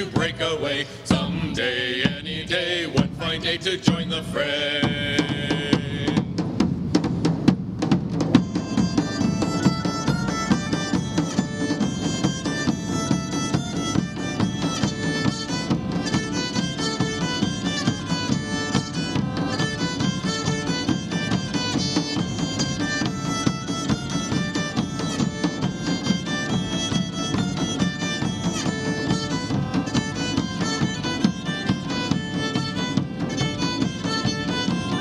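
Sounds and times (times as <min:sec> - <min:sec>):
large bass drums: 0:00.0 - 0:35.0
bagpipes: 0:08.3 - 0:35.0.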